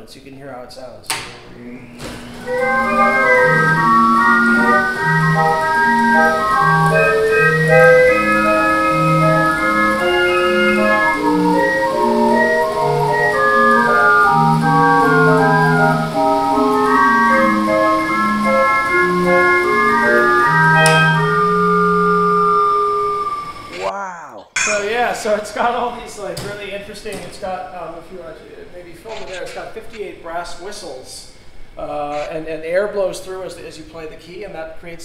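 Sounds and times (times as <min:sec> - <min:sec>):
calliope playing a tune: 0:02.4 - 0:23.8.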